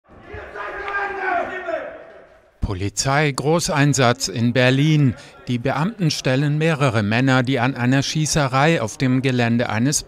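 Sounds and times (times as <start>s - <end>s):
people shouting: 0.1s - 2.3s.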